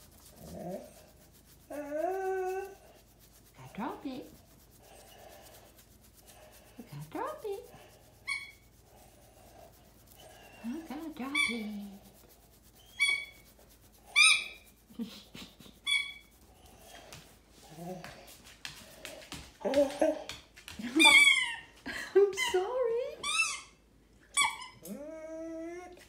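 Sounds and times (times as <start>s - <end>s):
dog whining: 1.6s - 3.0s, 23.2s - 26.0s.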